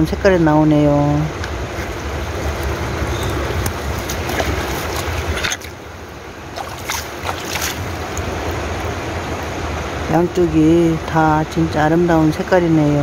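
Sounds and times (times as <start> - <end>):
rushing water: 0.0 - 13.0
water splashing on rock: 3.4 - 5.9, 6.5 - 8.6.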